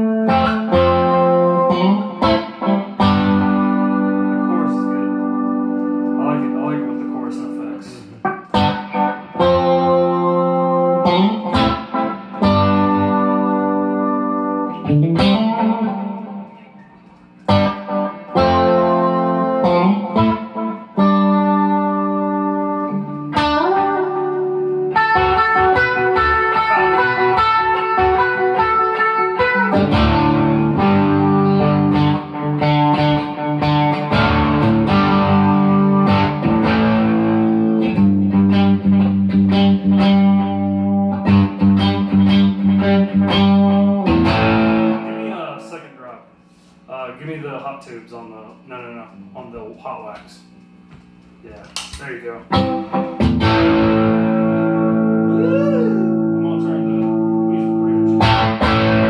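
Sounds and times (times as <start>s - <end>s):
electric guitar strumming: 0.0s - 59.0s.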